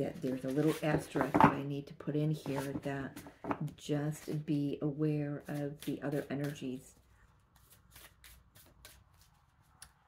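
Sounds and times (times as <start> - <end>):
playing cards shuffling: 7.5 - 9.8.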